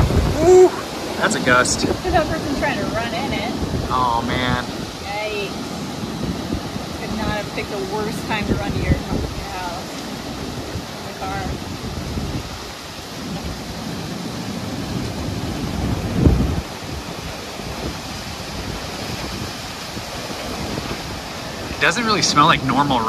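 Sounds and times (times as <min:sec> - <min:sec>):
hiss of freezing rain and sleet: 0:00.0 - 0:23.0
wind buffeting microphone: 0:00.0 - 0:23.0.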